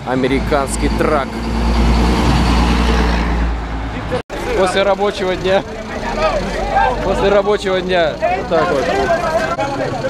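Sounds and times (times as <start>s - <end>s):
truck diesel engine rumble: 0.0s - 10.0s.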